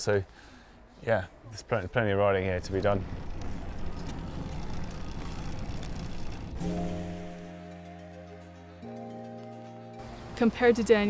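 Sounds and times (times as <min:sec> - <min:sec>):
noisy rumble: 0:02.5 - 0:07.4
background music sustained chord: 0:06.6 - 0:11.0.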